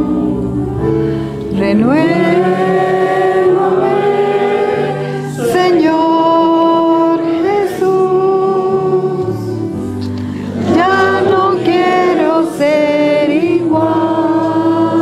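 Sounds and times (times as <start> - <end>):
low steady accompaniment: 0.0 - 15.0
women singing a hymn: 0.0 - 15.0.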